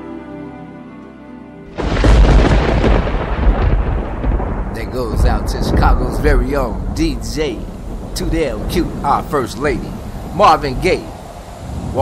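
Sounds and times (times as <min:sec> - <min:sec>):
rain hiss: 0:01.7 - 0:12.0
rumbling thunder: 0:01.7 - 0:12.0.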